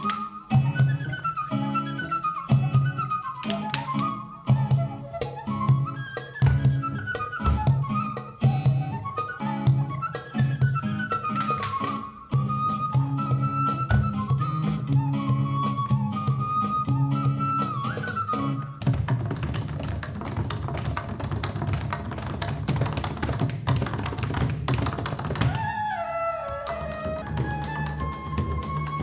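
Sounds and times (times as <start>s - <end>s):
rapid dance footwork tapping: 6.4s - 8.1s, 13.9s - 14.4s, 18.8s - 25.8s, 26.6s - 29.0s.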